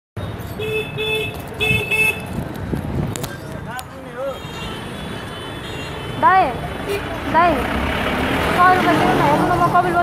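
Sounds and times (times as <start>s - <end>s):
street traffic: 0.2s - 10.0s
vehicle horn beeping: 0.6s - 2.3s, 4.2s - 7.2s.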